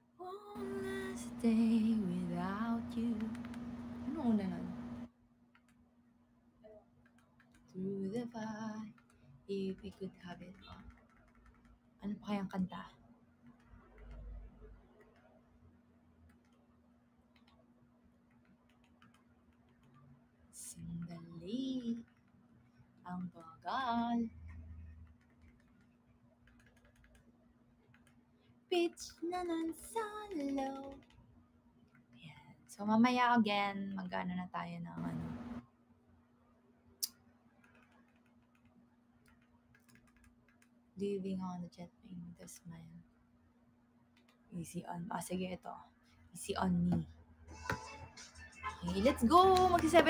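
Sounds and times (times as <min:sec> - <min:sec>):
steady low hum: 0:00.0 - 0:11.2, 0:11.8 - 0:37.6
faint irregular clicks: 0:02.9 - 0:04.0, 0:05.0 - 0:05.8, 0:06.6 - 0:12.0, 0:13.4 - 0:15.5, 0:16.2 - 0:20.1, 0:20.7 - 0:23.6, 0:24.5 - 0:32.8, 0:37.0 - 0:40.8, 0:44.1 - 0:44.5.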